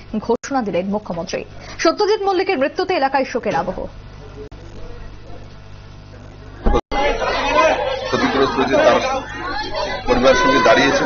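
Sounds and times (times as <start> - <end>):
crowd chatter: 6.3 - 11.0.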